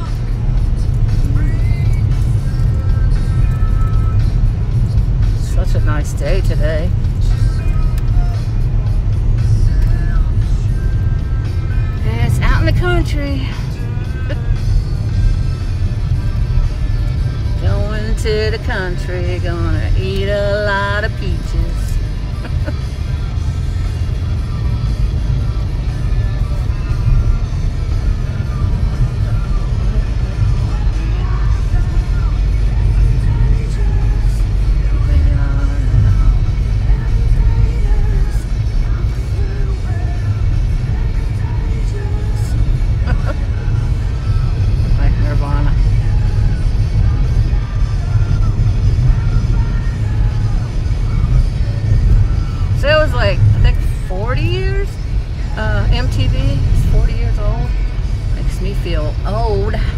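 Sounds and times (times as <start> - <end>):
music playing quietly: 0.0 - 59.9
road and engine rumble in car: 0.0 - 59.9.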